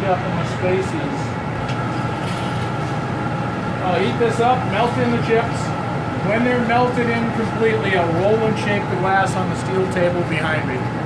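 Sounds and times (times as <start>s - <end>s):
gas furnace roaring: 0.0s - 11.0s.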